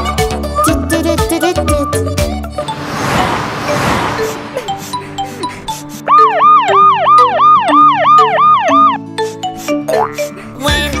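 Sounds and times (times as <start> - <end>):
light background music: 4.6 - 11.0
cartoon police siren whoops: 6.0 - 9.0.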